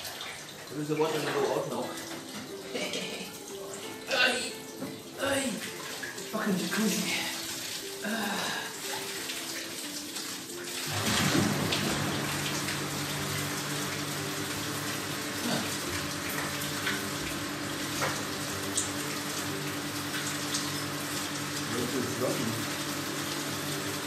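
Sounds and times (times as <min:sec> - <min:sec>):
churning bubbling water: 0:04.0 - 0:24.0
jet pump motor hum: 0:10.8 - 0:24.0.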